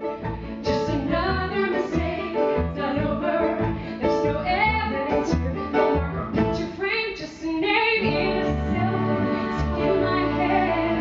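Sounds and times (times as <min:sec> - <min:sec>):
instrumental accompaniment: 0:00.0 - 0:07.0, 0:08.0 - 0:11.0
woman singing a ballad: 0:06.6 - 0:11.0.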